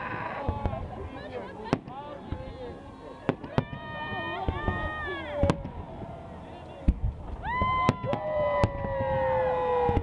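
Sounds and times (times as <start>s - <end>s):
fireworks bangs: 0.0s - 6.2s, 6.8s - 10.0s
onlookers' voices: 0.0s - 10.0s.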